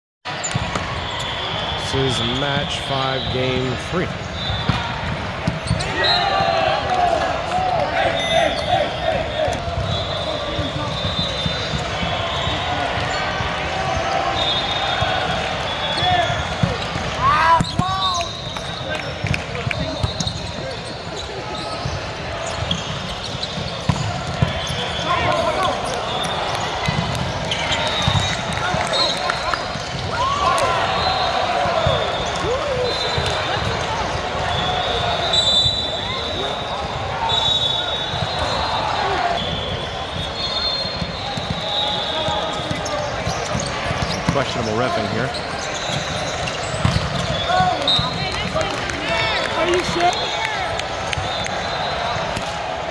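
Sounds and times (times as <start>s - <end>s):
hubbub of voices: 0.3s - 52.9s
volleyballs hit and bouncing: 0.4s - 1.6s, 4.2s - 8.1s, 9.0s - 35.2s, 38.0s - 51.6s, 52.2s - 52.9s.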